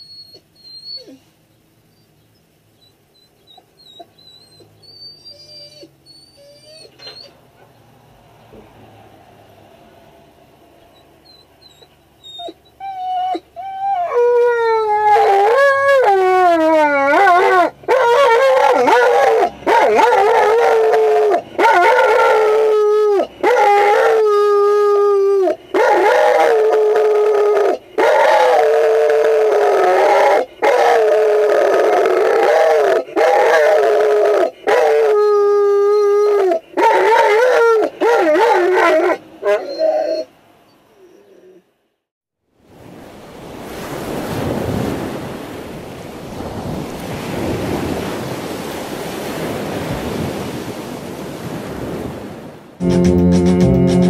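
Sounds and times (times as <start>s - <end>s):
dog whining: 0.0s - 1.3s, 1.9s - 7.7s, 10.9s - 41.7s
dog howling: 2.8s - 7.3s, 10.9s - 41.7s.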